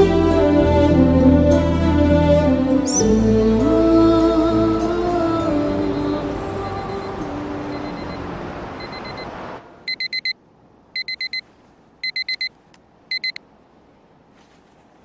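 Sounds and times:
soft background music: 0.0s - 9.3s
alarm clock beeping: 7.7s - 8.2s, 8.8s - 9.3s, 9.9s - 10.4s, 11.0s - 11.4s, 12.0s - 12.5s, 13.1s - 13.4s.

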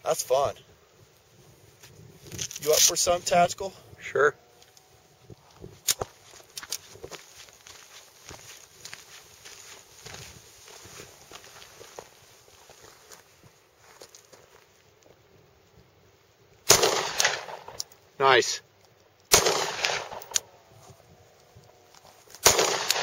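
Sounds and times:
crunching footsteps on gravel: 1.8s - 3.0s, 4.6s - 15.2s, 19.5s - 22.8s
loud pistol shot: 16.7s - 17.8s, 19.3s - 20.4s, 22.4s - 23.0s.

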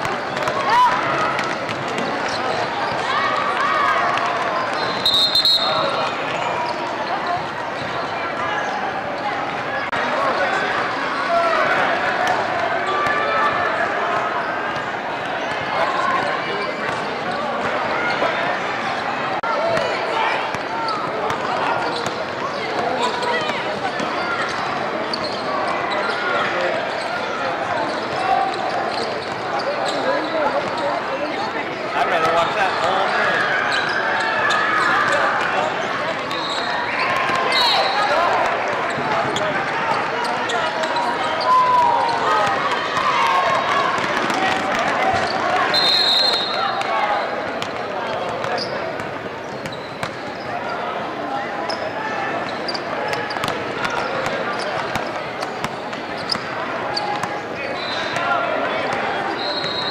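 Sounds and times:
basketball bouncing on court: 0.0s - 3.1s, 47.6s - 50.3s
voices talking and shouting: 0.0s - 59.9s.

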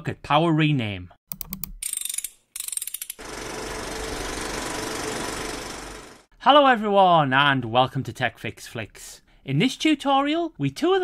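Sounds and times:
sharp clicks: 1.3s - 3.2s
fast mechanical rattle: 2.6s - 6.3s.

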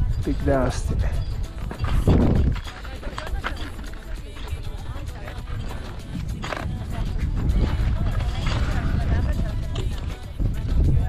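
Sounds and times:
people's voices: 0.0s - 11.0s
wind buffeting microphone: 0.0s - 11.0s.

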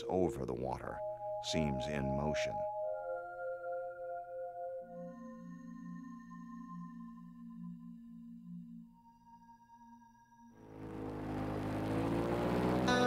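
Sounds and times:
soft synthesizer tones: 0.0s - 9.6s
airboat engine revving: 10.6s - 13.0s.

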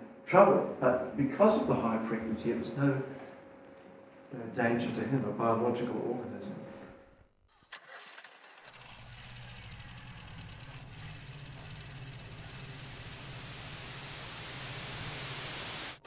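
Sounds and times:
low rumble: 8.9s - 15.6s
hiss: 10.6s - 16.0s.

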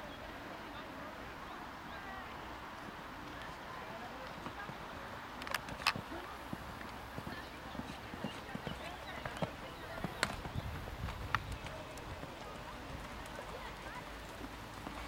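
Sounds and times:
sharp clicks: 5.4s - 6.0s
horse hoofbeats on sand: 5.9s - 15.0s.

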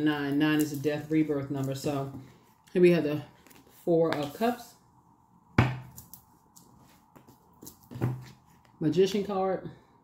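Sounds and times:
cards slapped on wooden table: 5.6s - 6.1s.

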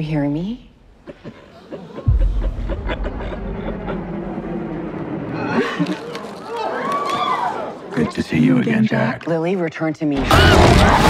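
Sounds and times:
deep bass boom: 2.1s - 5.6s
low rumbling drone: 2.1s - 6.2s.

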